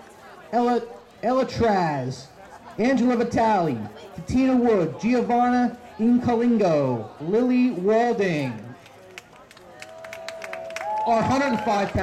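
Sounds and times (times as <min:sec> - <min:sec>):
small crowd clapping: 0:08.4 - 0:12.0.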